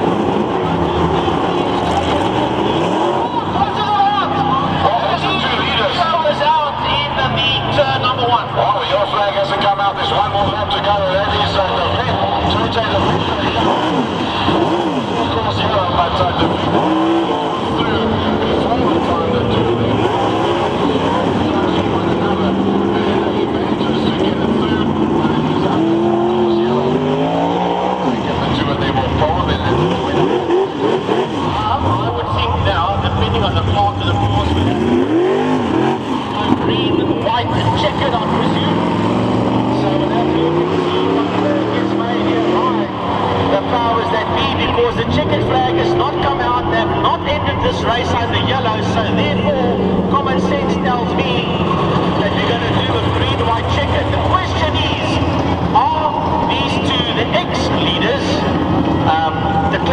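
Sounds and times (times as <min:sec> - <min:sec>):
race car engines revving: 0:00.0 - 0:59.9.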